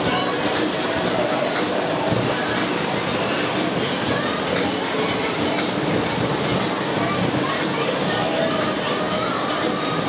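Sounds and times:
fairground din: 0.0 - 10.0
roundabout ride running: 0.0 - 10.0.

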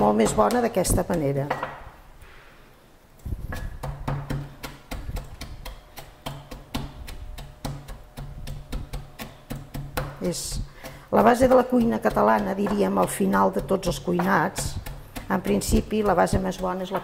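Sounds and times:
pestle pounding in ceramic mortar: 0.0 - 1.9, 3.4 - 17.0.

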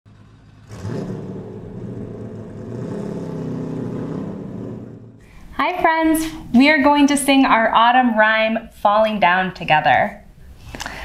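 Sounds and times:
low car engine drone: 0.0 - 5.6.

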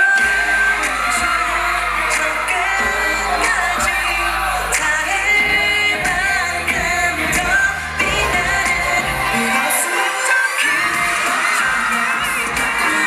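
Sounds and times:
male group singing pop live: 0.0 - 13.0.

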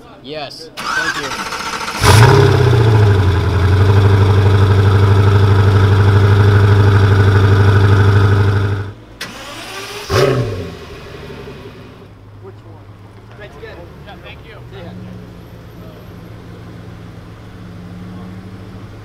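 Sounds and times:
engine blip: 0.8 - 12.1
car engine idling: 0.8 - 19.0.

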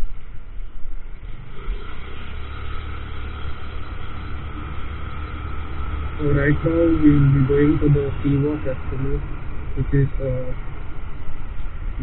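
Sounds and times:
road noise hum: 0.0 - 12.0
scooter engine accelerating: 1.2 - 11.2.

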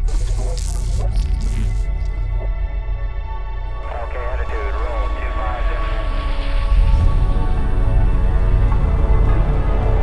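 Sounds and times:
deep steady rumble: 0.0 - 10.0.

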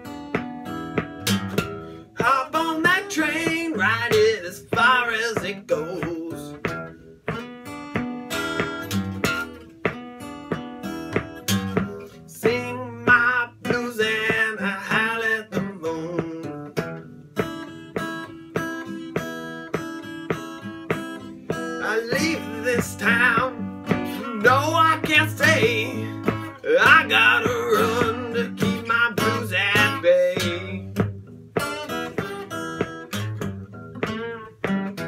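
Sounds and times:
acoustic guitar blues strumming: 0.0 - 35.0
wordless vocal: 21.8 - 30.9.

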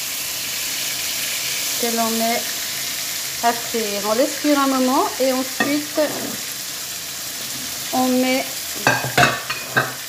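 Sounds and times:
fish frying in hot oil: 0.0 - 10.0.

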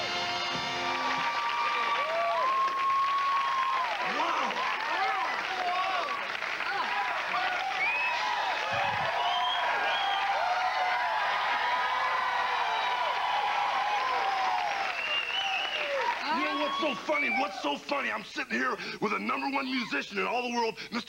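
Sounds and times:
audience clapping: 0.0 - 17.6
voices whooping and shouting: 1.0 - 17.8.

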